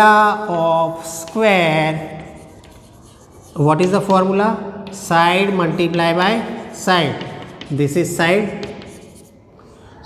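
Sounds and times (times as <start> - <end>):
person speaking: 0.0 - 9.8
chalk scratching on blackboard: 0.9 - 9.4.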